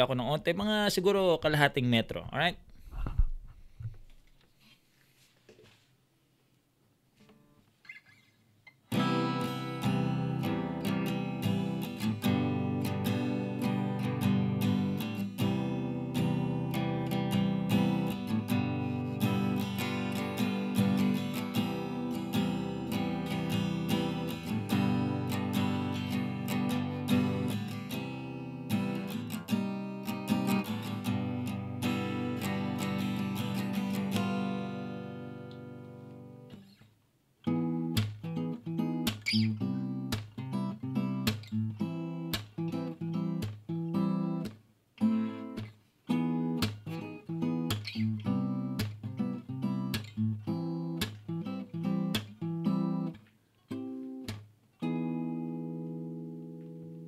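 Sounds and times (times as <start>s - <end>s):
acoustic guitar playing: 7.2s - 36.8s, 37.4s - 57.0s.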